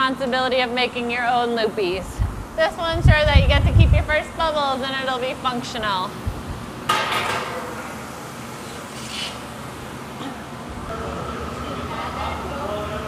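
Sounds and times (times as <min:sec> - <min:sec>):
studio background noise: 0:00.0 - 0:13.0.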